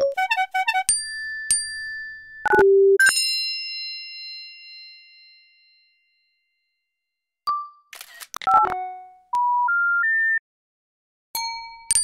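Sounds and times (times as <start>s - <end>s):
electronic clicks and blips: 2.4s - 3.1s, 8.0s - 9.1s.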